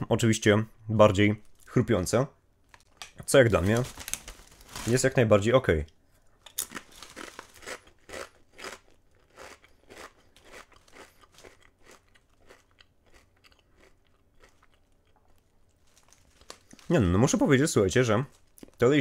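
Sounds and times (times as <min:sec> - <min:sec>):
person chewing crisps: 0:06.4 - 0:17.6, 0:18.2 - 0:19.0.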